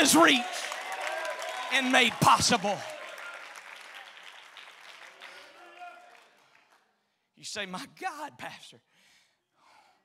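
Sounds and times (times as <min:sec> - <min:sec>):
congregation applauding: 0:00.0 - 0:06.9.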